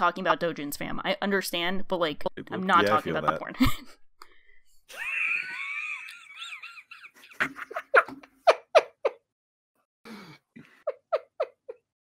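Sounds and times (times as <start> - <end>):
garbled robotic voice on call: 2.3 - 3.4
laughter: 3.5 - 4.0, 4.9 - 9.2, 10.7 - 11.9.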